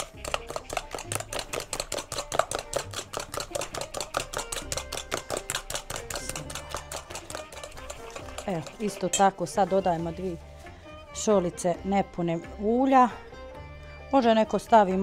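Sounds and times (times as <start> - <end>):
spoon clicking against bowl: 0.0 - 9.3.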